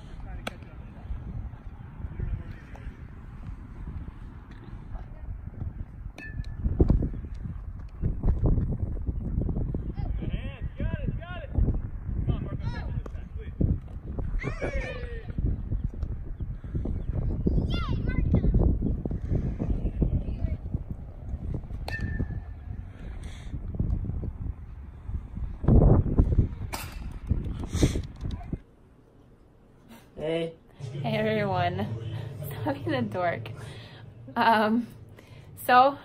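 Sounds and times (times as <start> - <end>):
wind rumbling on microphone: 0.0 - 28.6
metal bat hitting baseball: 6.1 - 6.6, 21.8 - 22.5, 26.7 - 27.2.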